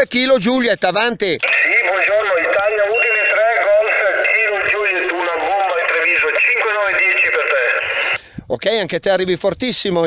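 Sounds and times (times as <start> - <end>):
person talking over radio loudspeaker: 1.4 - 8.2.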